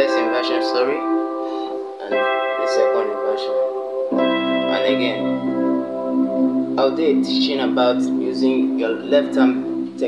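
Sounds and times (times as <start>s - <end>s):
electronic keyboard chords: 0.0s - 10.0s.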